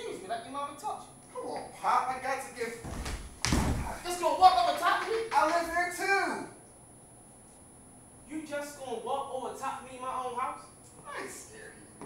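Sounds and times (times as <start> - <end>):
person falling onto stage floor: 2.8 - 4.0.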